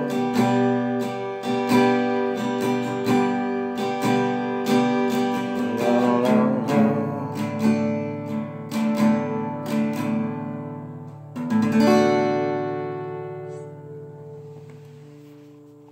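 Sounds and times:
acoustic guitar strumming chords: 0.0s - 15.9s.

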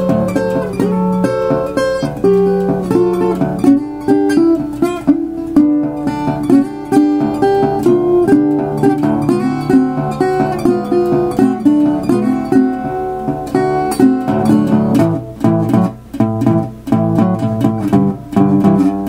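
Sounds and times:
fingerpicked resonator guitar: 0.0s - 19.0s.

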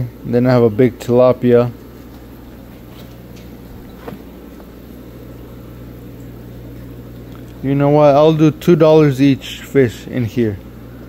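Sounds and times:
pond pump humming: 0.0s - 11.0s.

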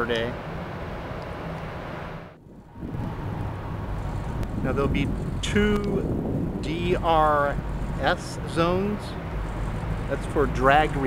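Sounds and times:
wind buffeting microphone: 2.4s - 11.0s.

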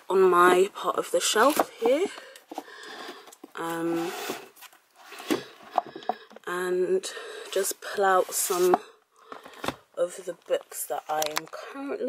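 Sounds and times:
book sliding on shelf: 3.8s - 6.0s, 8.1s - 8.8s.

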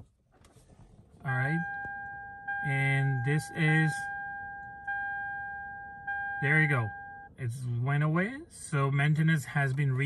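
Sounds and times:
dashboard chime dinging: 1.3s - 7.3s.

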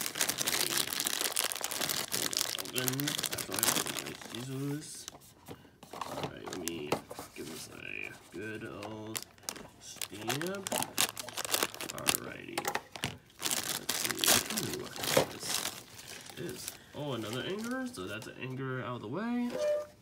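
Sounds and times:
plastic bag crinkling: 0.0s - 5.1s, 6.4s - 6.9s, 8.3s - 18.3s.

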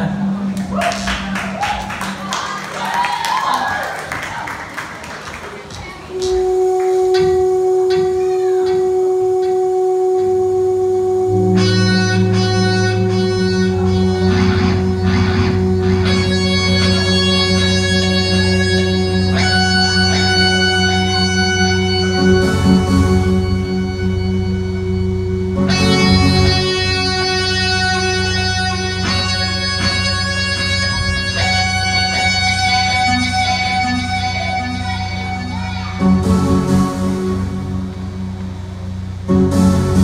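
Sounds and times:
bass line: 0.0s - 4.5s, 5.6s - 40.0s
electric guitar: 5.4s - 40.0s
long held note: 6.1s - 40.0s.

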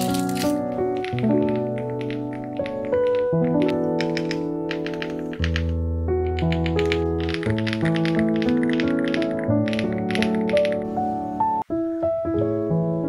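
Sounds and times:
mechanical keyboard typing: 0.0s - 10.8s
soft background music: 0.0s - 13.0s.

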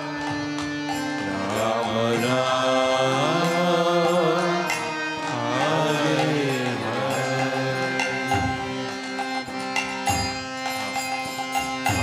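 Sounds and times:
harmonium held chord: 0.0s - 12.0s.

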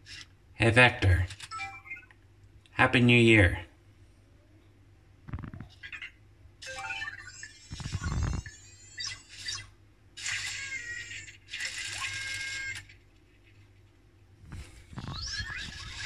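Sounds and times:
crackling noise bursts: 5.2s - 5.8s, 7.6s - 8.6s, 11.6s - 16.0s.

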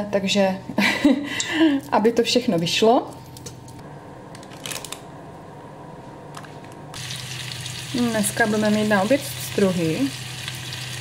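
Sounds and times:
fish sizzling in oil: 7.0s - 11.0s.

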